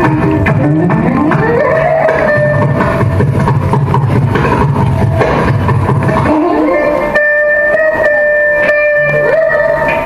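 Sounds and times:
electric mandolins plucking: 0:00.0 - 0:10.0
pulsing percussion beat: 0:00.0 - 0:10.0.

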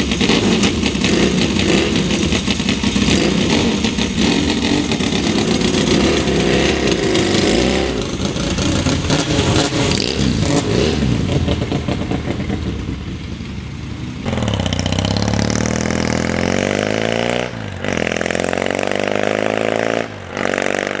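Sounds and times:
motorcycle engines pulling away: 0:00.0 - 0:21.0.

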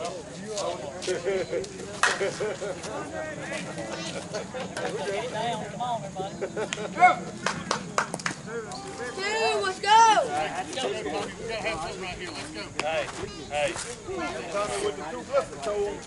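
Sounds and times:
players shouting and chatting: 0:00.0 - 0:16.0.

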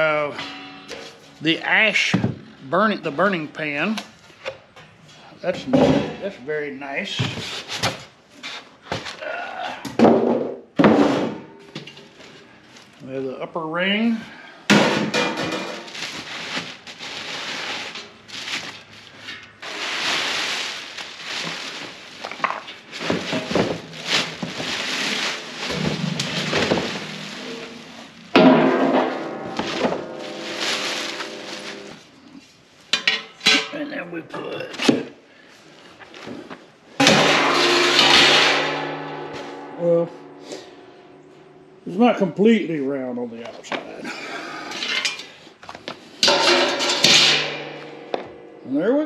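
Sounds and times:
plastic wrapping crinkling: 0:15.8 - 0:28.3, 0:29.5 - 0:32.4
steel parts clanking: 0:46.2 - 0:48.5.

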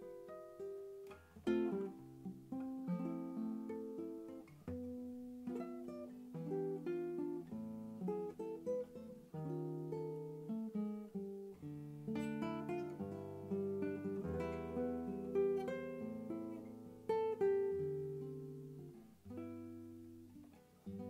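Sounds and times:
nylon-string guitar fingerstyle: 0:00.0 - 0:21.0.

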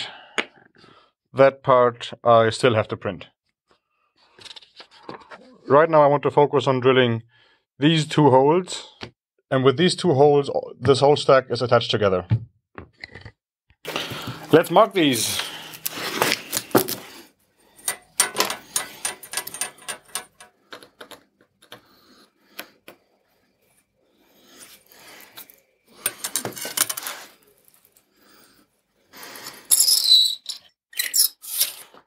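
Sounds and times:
scratching on steel plate: 0:17.7 - 0:20.7, 0:25.9 - 0:27.4
steel plates clinking and sliding: 0:17.7 - 0:21.2, 0:25.4 - 0:27.8.

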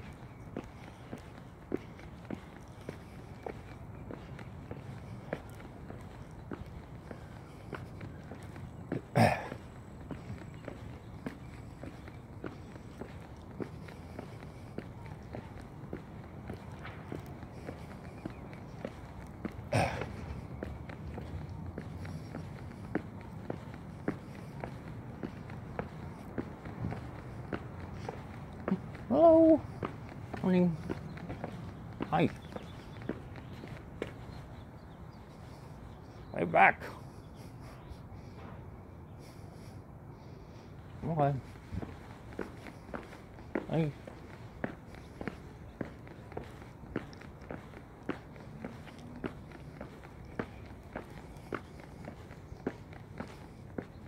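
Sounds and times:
footsteps on concrete: 0:00.0 - 0:54.0
low background noise: 0:00.0 - 0:54.0.

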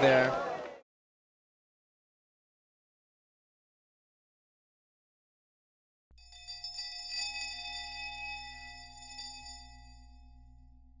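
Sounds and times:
bell-like chime: 0:06.2 - 0:10.9.

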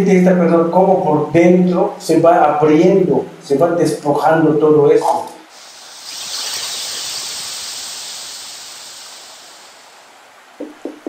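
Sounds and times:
steam hissing from hot stones: 0:05.5 - 0:10.5.

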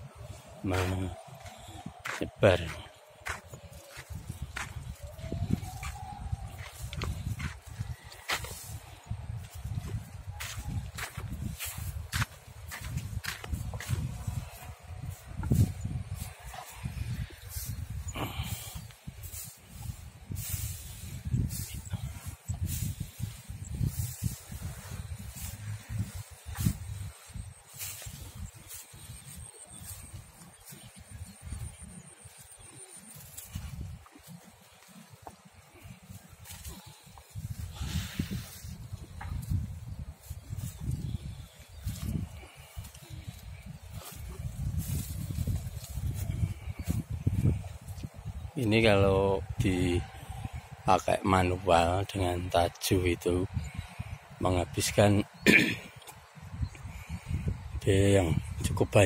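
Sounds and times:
wind buffeting microphone: 0:00.0 - 0:52.8, 0:53.4 - 0:59.0
footsteps crunching through straw: 0:00.0 - 0:54.1.

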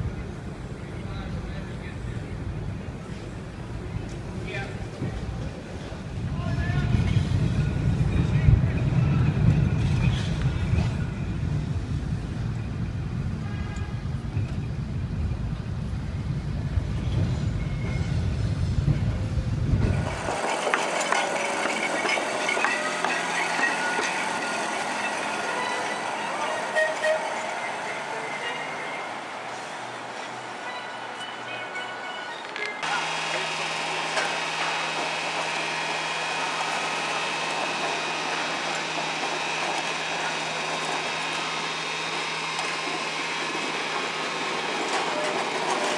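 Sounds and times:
streetcar running: 0:00.0 - 0:45.9
voices in background: 0:25.8 - 0:29.9.

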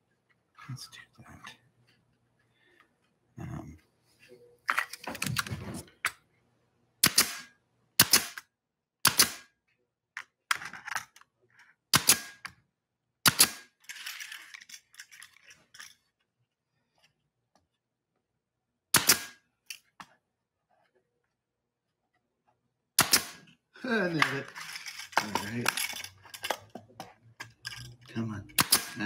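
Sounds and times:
pneumatic nailer shots: 0:07.0 - 0:08.4, 0:09.0 - 0:09.5, 0:11.9 - 0:12.4, 0:13.2 - 0:13.7, 0:18.9 - 0:19.4, 0:23.0 - 0:23.5, 0:28.6 - 0:29.0
handling noise: 0:24.1 - 0:28.0.

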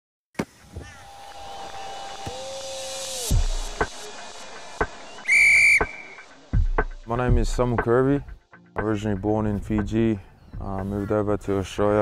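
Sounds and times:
shrill whistle blast: 0:04.8 - 0:06.4
backing music knocks: 0:06.6 - 0:10.0.

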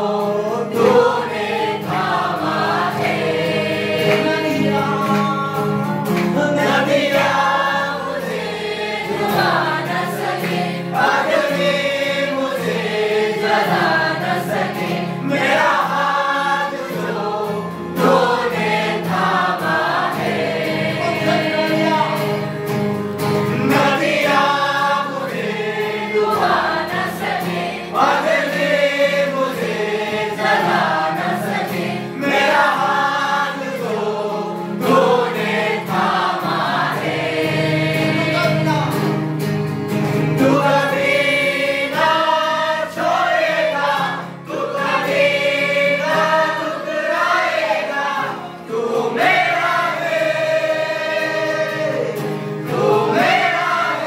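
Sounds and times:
choir singing worship song: 0:00.0 - 0:54.0
instrumental backing music: 0:00.0 - 0:54.0.

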